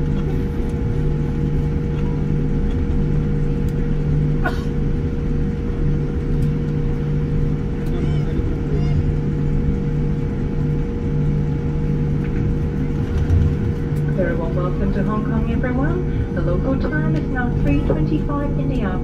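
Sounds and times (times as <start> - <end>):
airplane cabin rumble: 0.0 - 19.0.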